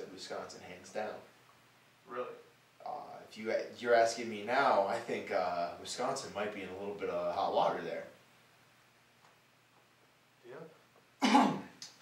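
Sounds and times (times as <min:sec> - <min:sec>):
person coughing: 0:11.2 - 0:11.8.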